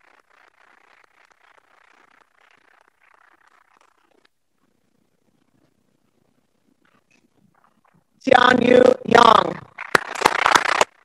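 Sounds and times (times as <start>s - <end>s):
people clapping: 9.2s - 11.0s.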